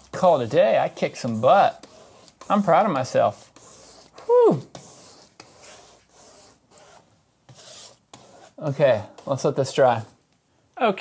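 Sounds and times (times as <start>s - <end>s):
paintbrush brushing on canvas: 0.2s - 10.2s.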